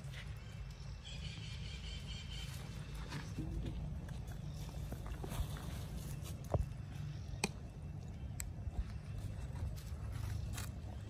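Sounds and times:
rustles on dry leaves: 0.0 - 7.1, 8.9 - 11.0.

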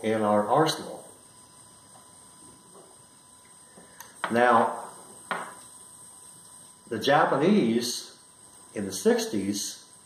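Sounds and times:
faint steady hiss: 0.0 - 10.0
thin steady hum: 0.0 - 10.0.

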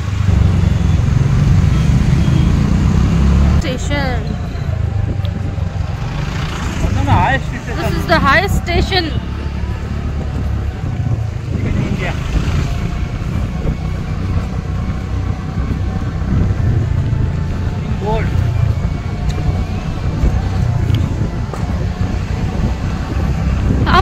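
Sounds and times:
car engine and road rumble: 0.0 - 24.0.

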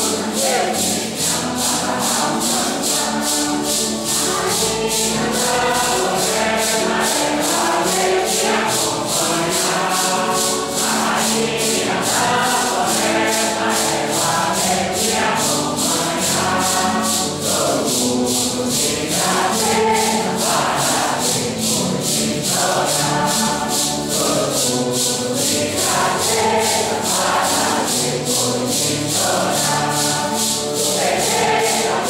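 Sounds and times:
congregation singing a hymn: 0.0 - 32.0
maracas shaken: 0.0 - 32.0.

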